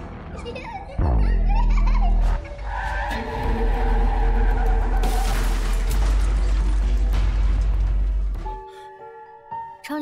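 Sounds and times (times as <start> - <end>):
background music: 0.0 - 10.0
small child giggling: 1.4 - 2.6.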